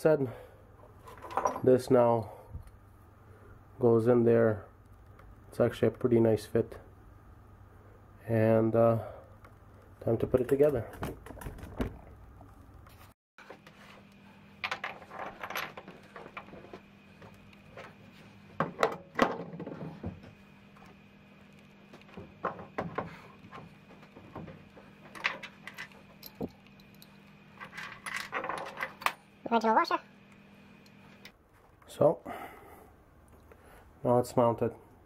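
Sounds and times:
faint steady hum: 0:00.0 - 0:35.0
metal parts clinking and scraping: 0:25.2 - 0:29.1.

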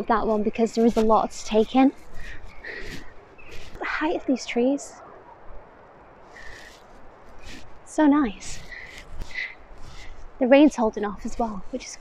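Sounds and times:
soft breathy sound: 0:00.4 - 0:04.5, 0:06.1 - 0:12.0.

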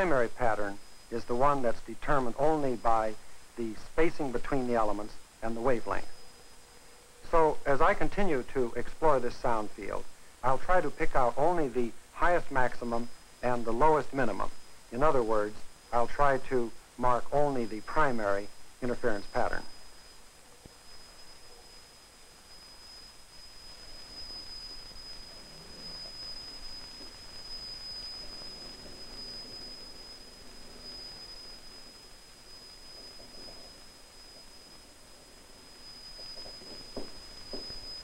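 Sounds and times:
high-pitched test tone: 0:09.0 - 0:21.8.

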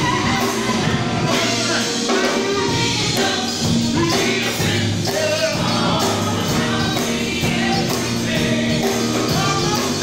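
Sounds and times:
keyboard and band: 0:00.0 - 0:10.0
singers on microphones: 0:00.0 - 0:10.0.

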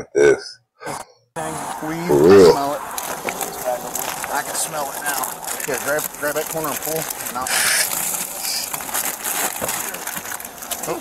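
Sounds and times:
plastic wrapping crinkling: 0:03.0 - 0:11.0.

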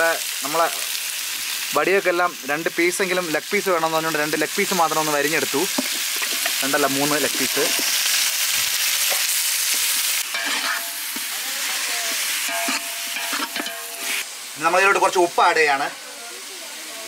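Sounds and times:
oil sizzling in a pan: 0:00.0 - 0:17.0.

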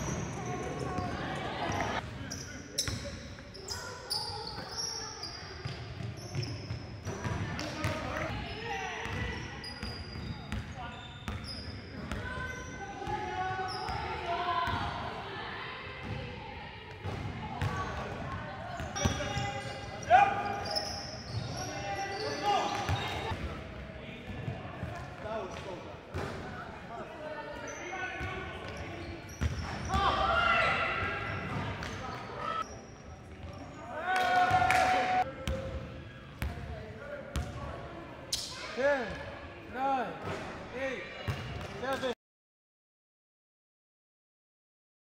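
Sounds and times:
players' indistinct voices: 0:00.0 - 0:42.2.

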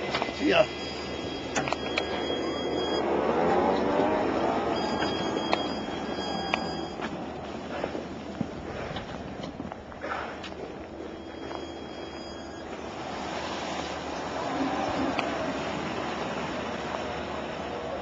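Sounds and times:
tyres crunching on snow: 0:00.0 - 0:18.0.

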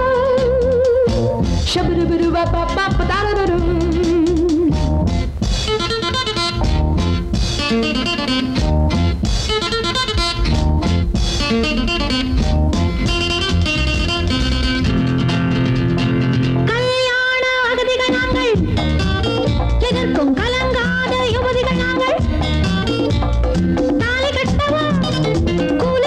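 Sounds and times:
drum kit beat: 0:00.0 - 0:16.8, 0:17.8 - 0:26.0
bass guitar: 0:00.0 - 0:17.2, 0:17.8 - 0:26.0
electric guitar riffs: 0:00.0 - 0:26.0.

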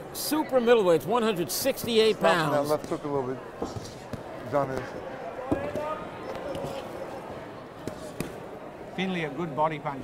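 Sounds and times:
arena crowd hum: 0:00.0 - 0:10.0.

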